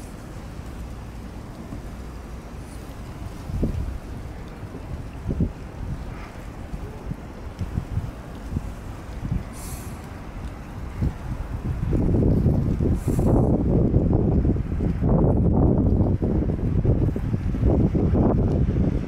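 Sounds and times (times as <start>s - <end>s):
wind buffeting microphone: 0.0s - 19.0s
brief hisses: 9.5s - 10.0s.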